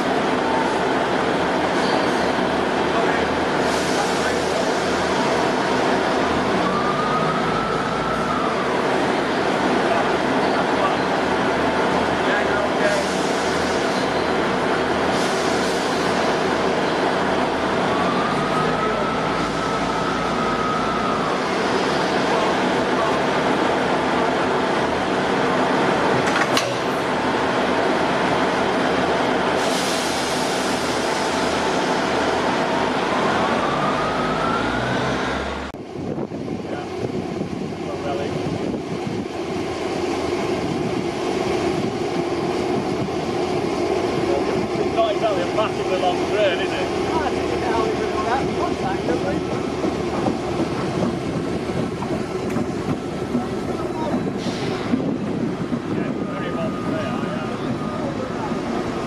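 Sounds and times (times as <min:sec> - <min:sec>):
diesel train droning: 0:00.0 - 0:59.0
train coupling clunk: 0:26.1 - 0:27.0.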